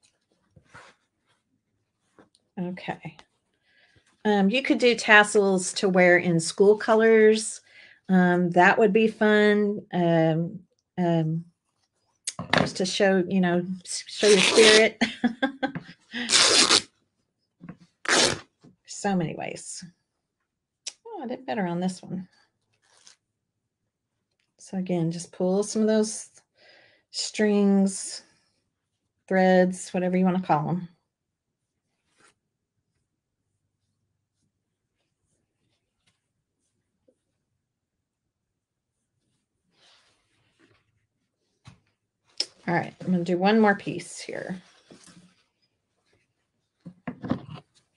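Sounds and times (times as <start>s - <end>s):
fabric strips rustling: 0.0s - 2.4s, 14.2s - 14.9s, 16.2s - 16.9s, 17.7s - 18.4s, 22.6s - 23.2s, 39.1s - 43.8s, 44.5s - 47.9s
fabric ripping: 14.2s - 14.9s, 16.2s - 16.9s, 18.0s - 18.5s, 22.7s - 23.2s.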